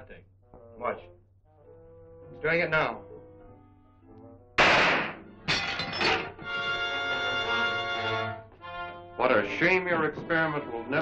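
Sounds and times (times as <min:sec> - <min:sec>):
glassware smashing: 0:04.6 - 0:06.4.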